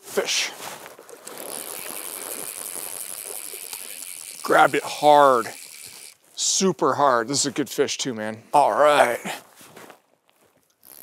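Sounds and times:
river water running: 0:00.0 - 0:06.6.

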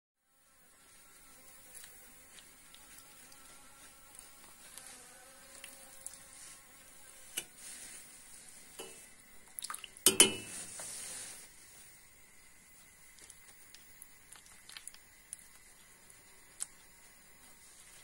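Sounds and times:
flying insect buzzing: 0:00.2 - 0:09.4.

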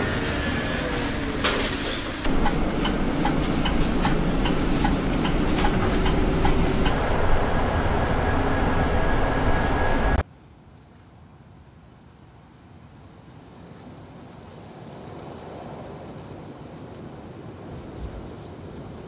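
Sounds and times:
electric bus driving: 0:00.0 - 0:10.2.

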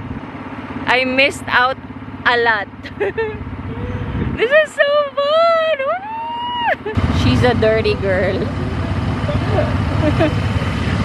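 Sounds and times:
engine rumbling: 0:00.0 - 0:11.0
faint voices: 0:03.6 - 0:11.0.

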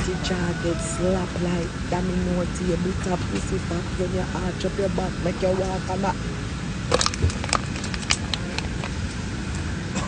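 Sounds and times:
airliner cabin drone: 0:00.0 - 0:10.0.

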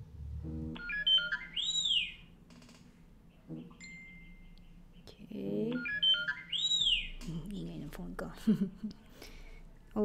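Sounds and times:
phone alert tone: 0:00.4 - 0:02.1, 0:05.7 - 0:07.0.

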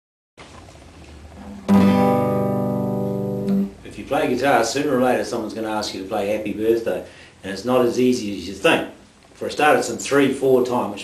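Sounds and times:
classical guitar chord ringing: 0:01.5 - 0:03.8.

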